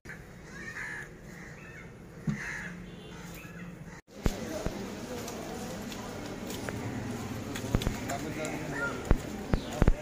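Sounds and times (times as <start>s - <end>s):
crow cawing: 0.1s - 4.0s
outdoor background noise: 0.1s - 10.0s.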